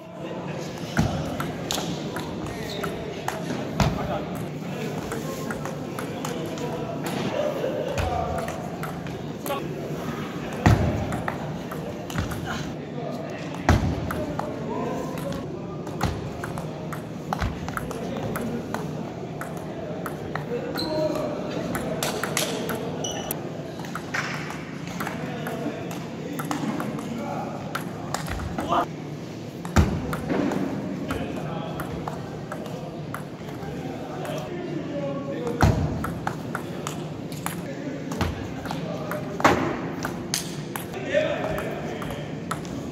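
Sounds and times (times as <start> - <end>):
ping pong ball hitting paddles: 0.8 - 7.2, 7.9 - 9.6, 10.5 - 12.5, 13.5 - 28.9, 29.6 - 34.4, 35.4 - 42.9.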